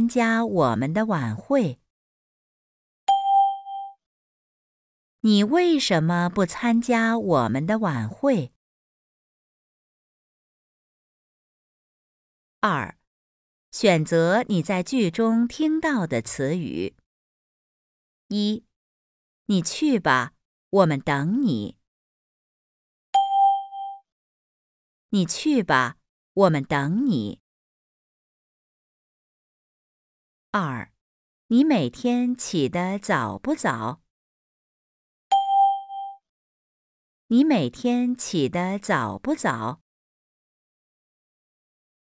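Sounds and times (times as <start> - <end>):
bell-like chime: 3.1 - 4.0, 23.2 - 24.0, 35.3 - 36.2.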